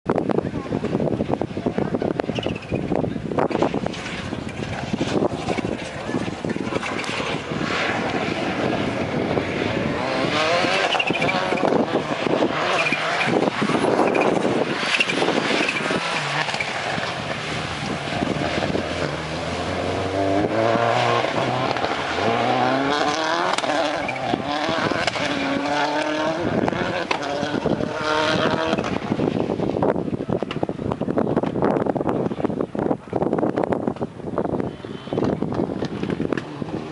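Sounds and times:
rally car engine revving: 0:00.2 - 0:36.9.

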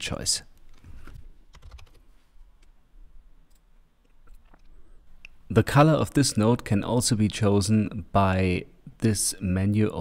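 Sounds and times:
keyboard typing: 0:00.7 - 0:02.0.

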